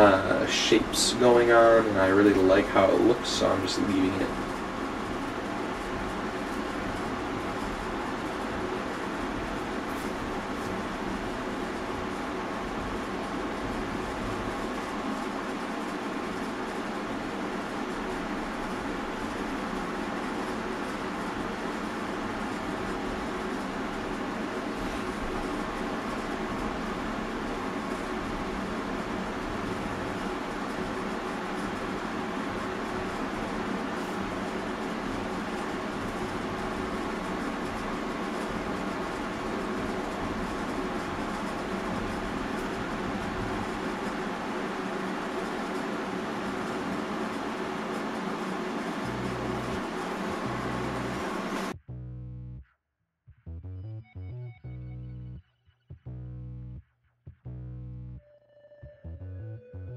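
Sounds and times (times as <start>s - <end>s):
machine hum and hiss: 0.0s - 51.8s.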